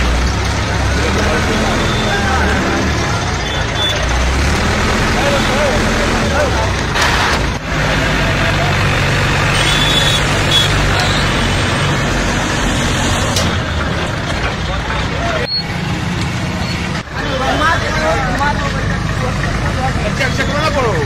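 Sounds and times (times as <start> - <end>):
crowd talking: 0.0 - 12.2, 13.4 - 21.0
heavy vehicle engine rumbling: 0.0 - 21.0.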